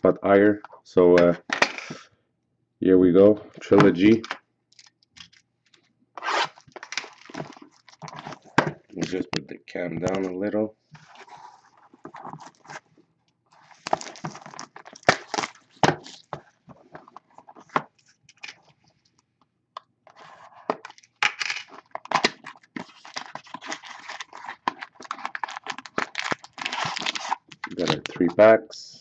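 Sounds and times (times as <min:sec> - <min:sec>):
plastic wrapping crinkling and tearing: 0:06.2 - 0:08.4, 0:13.5 - 0:16.3, 0:20.8 - 0:28.2
foil packs handled: 0:21.8 - 0:28.1.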